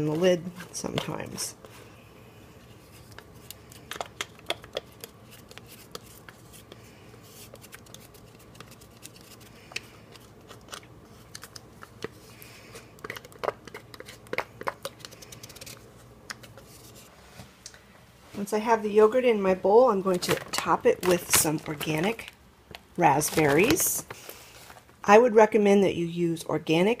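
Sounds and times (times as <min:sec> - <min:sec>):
spoon scraping yogurt into bowl: 0:10.1 - 0:15.8.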